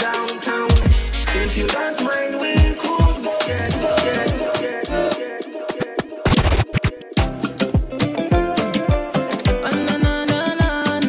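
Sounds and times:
turntable scratching: 0:00.0 - 0:08.1
dance music: 0:00.0 - 0:11.0.

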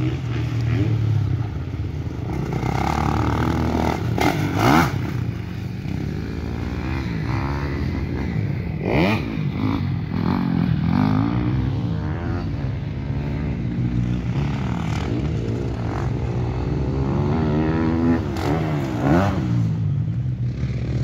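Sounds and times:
dirt bike engines revving: 0:00.0 - 0:21.0.

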